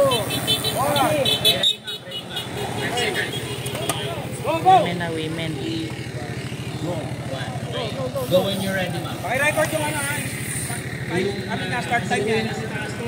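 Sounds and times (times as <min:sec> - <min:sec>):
people calling out: 0:00.0 - 0:08.6
motorcycle engine idling: 0:02.1 - 0:13.0.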